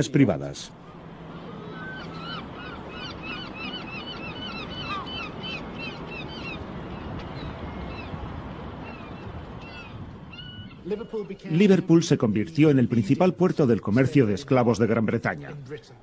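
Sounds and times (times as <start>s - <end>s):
steady outdoor hum: 0.0s - 16.0s
birds calling short arched cries: 0.8s - 11.6s.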